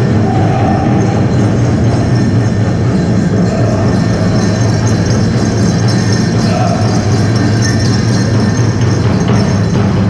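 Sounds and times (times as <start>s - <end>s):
bells jingling: 0.0s - 10.0s
drum beaten fast: 0.0s - 10.0s.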